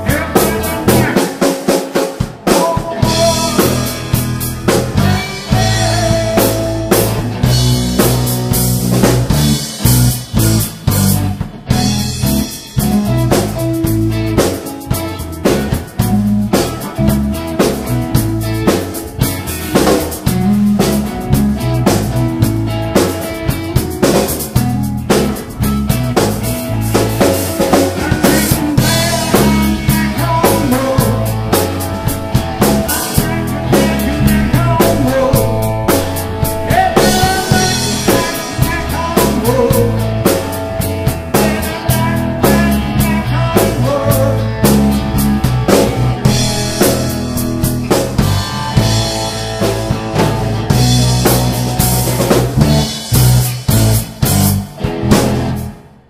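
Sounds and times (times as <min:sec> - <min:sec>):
drum kit beat: 0:00.0 - 0:55.7
guitar and bass lines: 0:00.0 - 0:56.0.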